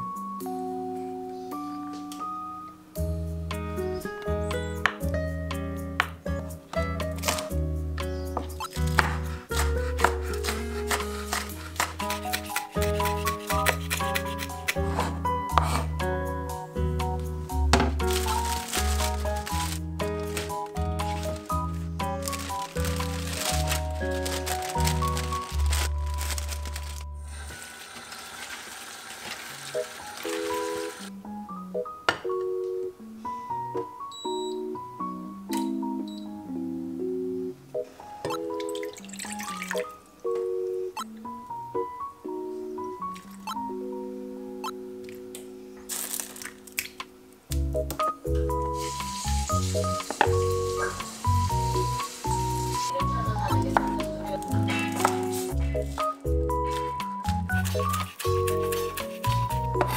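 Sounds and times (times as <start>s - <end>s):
running tap water: 27.3s - 31.1s, 38.5s - 40.0s, 48.8s - 52.9s.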